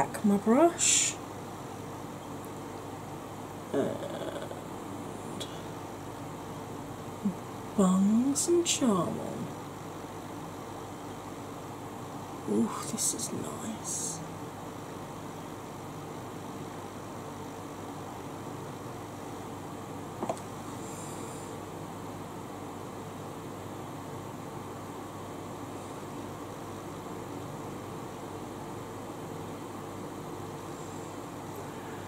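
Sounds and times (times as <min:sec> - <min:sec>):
electric fan whirring: 0:00.0 - 0:32.0
faint constant hum: 0:00.0 - 0:32.0.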